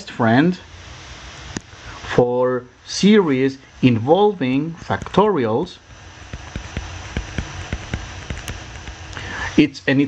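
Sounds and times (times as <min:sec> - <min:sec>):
stylus tapping on touchscreen: 0:06.3 - 0:08.6.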